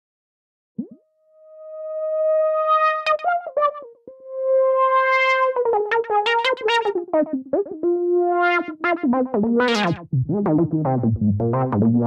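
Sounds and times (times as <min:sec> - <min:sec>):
synthesizer notes: 0:01.8 - 0:07.4, 0:08.0 - 0:10.0.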